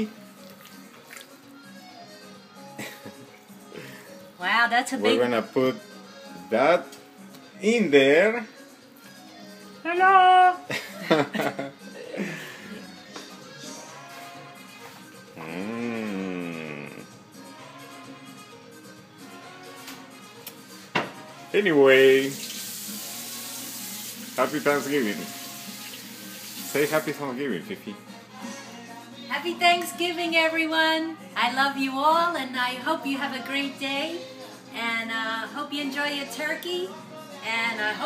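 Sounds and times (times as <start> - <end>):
quiet background music: 0.0 - 38.0.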